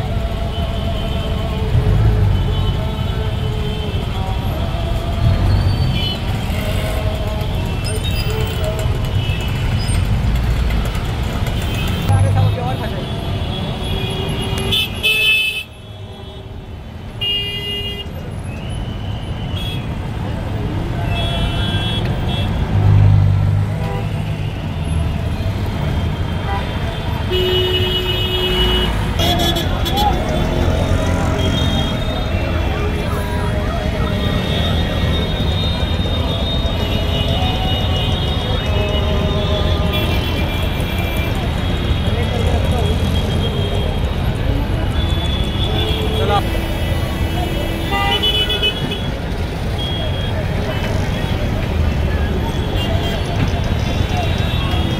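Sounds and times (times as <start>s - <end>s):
crowd voices: 0.0s - 15.1s, 19.9s - 54.9s
vehicle engines idling: 0.0s - 15.5s.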